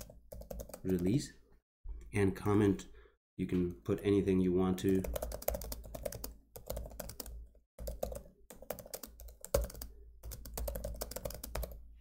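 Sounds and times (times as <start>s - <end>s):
typing on computer keyboard: 0.0s - 1.1s, 4.8s - 11.8s.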